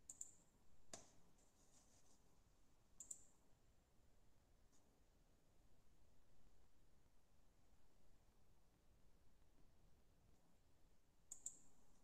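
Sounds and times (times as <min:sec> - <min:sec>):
computer mouse clicks: 0:00.0 - 0:01.2, 0:03.0 - 0:03.3, 0:11.3 - 0:11.8.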